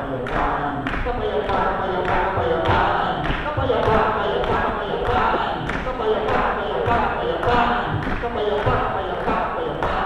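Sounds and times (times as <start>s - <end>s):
choir singing: 0.0s - 10.0s.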